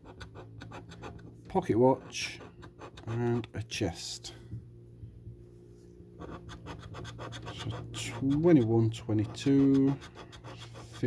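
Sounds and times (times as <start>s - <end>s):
coin scraping scratch card: 0.0s - 1.3s, 2.0s - 3.2s, 6.2s - 11.0s.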